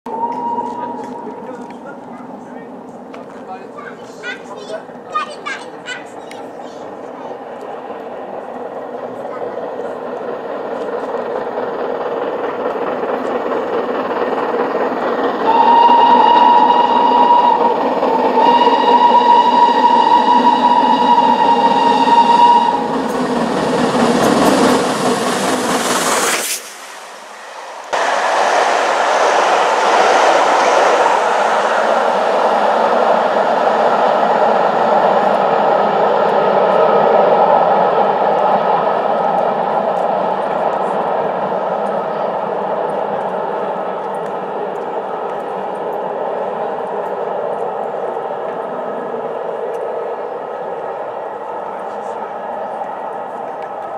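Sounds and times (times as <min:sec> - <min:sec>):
steam whistle blasts: 0:00.1 - 0:01.4, 0:15.4 - 0:23.0
steam locomotive running: 0:00.1 - 0:53.9
train coaches rolling past: 0:00.1 - 0:53.9.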